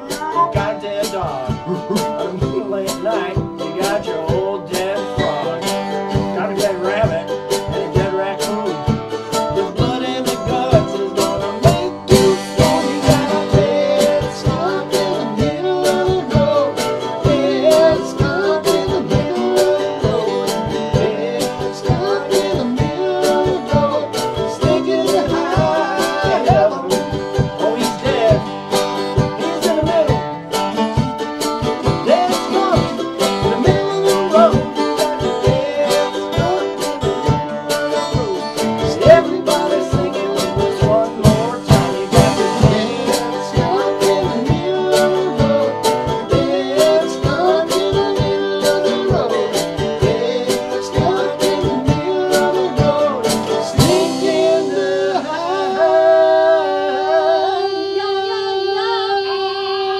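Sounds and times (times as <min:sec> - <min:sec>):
wavering vocal melody: 0:00.0 - 0:30.2, 0:31.8 - 0:59.9
acoustic guitar strumming: 0:00.0 - 0:59.9
mandolin strumming: 0:00.0 - 0:59.9.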